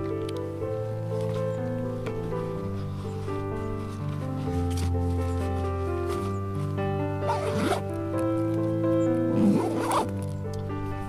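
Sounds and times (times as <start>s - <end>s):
background music: 0.0s - 11.0s
backpack zip pulled open: 4.7s - 5.5s, 7.2s - 8.0s, 9.3s - 10.4s.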